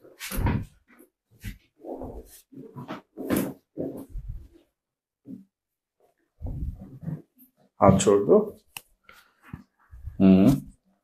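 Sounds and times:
padded table creaking and rustling: 0.0 - 7.8.

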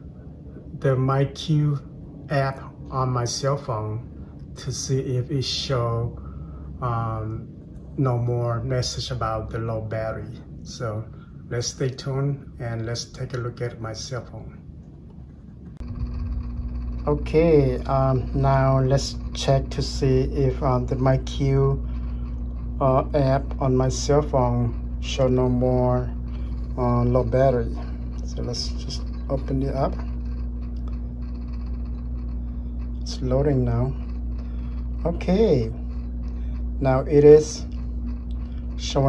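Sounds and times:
steady low hum: 0.0 - 39.0
faint held tone: 15.6 - 39.0.

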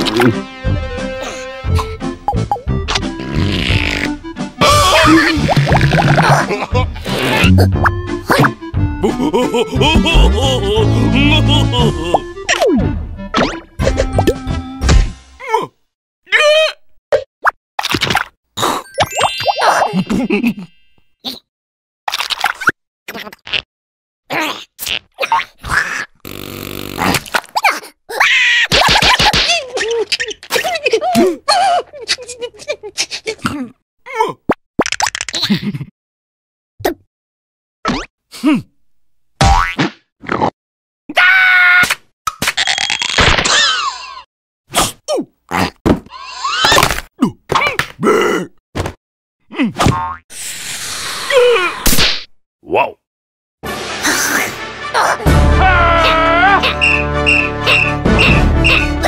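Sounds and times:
cartoon character grunting: 4.6 - 5.4, 9.0 - 12.3, 47.2 - 48.6, 54.1 - 56.8
cartoon whacks: 7.4 - 8.6, 13.3 - 15.2, 28.7 - 29.7, 39.4 - 40.5, 51.8 - 52.3
gliding squeaks and grunts: 45.5 - 46.9, 57.4 - 59.0.

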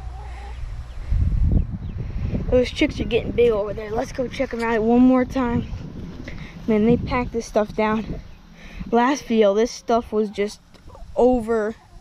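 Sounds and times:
chickens clucking: 0.0 - 1.1, 8.1 - 12.0
low microphone rumble: 0.0 - 12.0.

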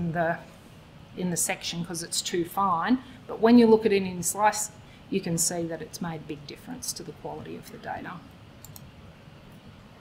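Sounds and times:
faint computer clicks: 8.6 - 8.9.

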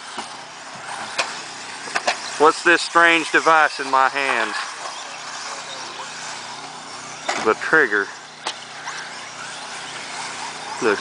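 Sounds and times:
toy cars whirring on dirt: 0.0 - 11.0.

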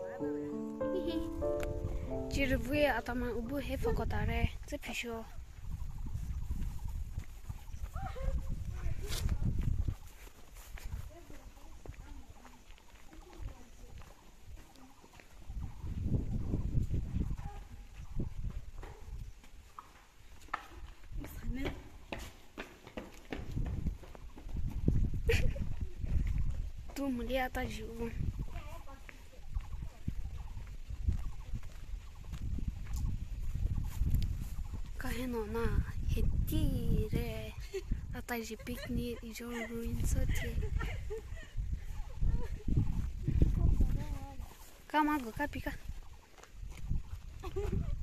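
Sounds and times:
high call: 0.0 - 3.3
footsteps on dirt path: 0.0 - 48.0
gusty wind on microphone: 1.8 - 11.2, 15.5 - 19.4, 23.4 - 44.6, 45.3 - 48.0.

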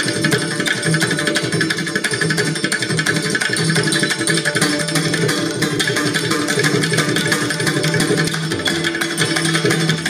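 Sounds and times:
santoor struck with hammers: 0.0 - 10.0
tabla playing: 0.0 - 10.0.

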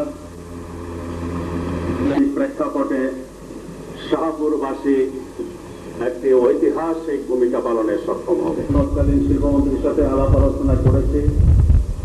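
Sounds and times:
faint steady tones: 0.0 - 11.2
steady low hum: 0.0 - 12.0.

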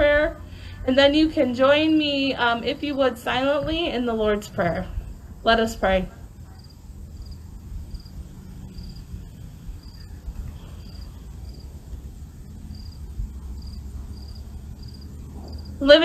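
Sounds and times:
low outdoor rumble: 0.0 - 16.0
crickets chirping: 4.6 - 16.0.

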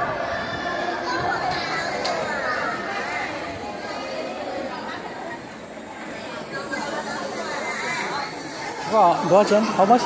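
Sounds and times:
people chattering in echoing hall: 0.0 - 10.0.

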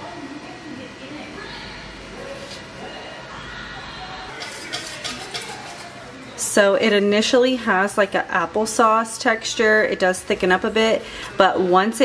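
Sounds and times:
utensil stirring in saucepan: 4.3 - 8.1
utensil scraping and tapping pan: 4.4 - 6.0.

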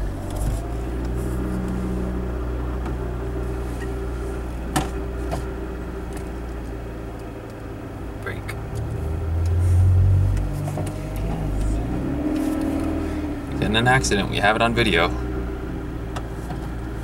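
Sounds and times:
car engine from inside cabin: 0.0 - 17.0.

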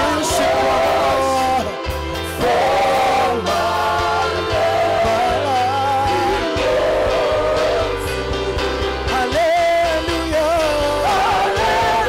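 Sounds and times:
bass beat: 0.0 - 12.0
live worship music: 0.0 - 12.0
person singing: 3.3 - 8.2, 9.1 - 12.0.

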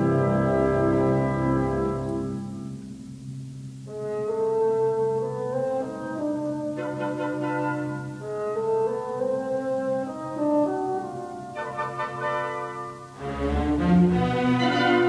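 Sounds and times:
slow orchestral music: 0.0 - 15.0.

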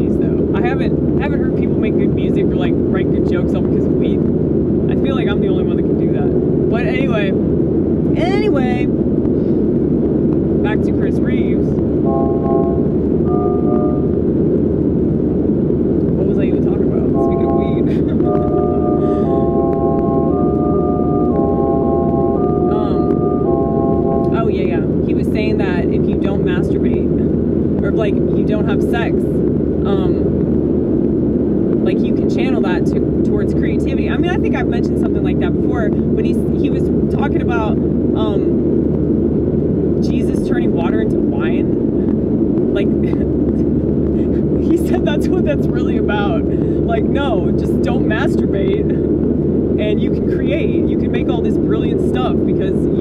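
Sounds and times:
woman talking: 0.0 - 4.2, 4.9 - 7.4, 8.1 - 8.9, 10.6 - 11.7, 16.2 - 19.6, 22.7 - 23.3, 24.2 - 30.3, 31.8 - 38.6, 40.0 - 41.8, 42.7 - 49.0, 49.8 - 53.0
car road and engine drone: 0.0 - 53.0
short electronic tones: 12.0 - 14.2, 17.1 - 24.4.

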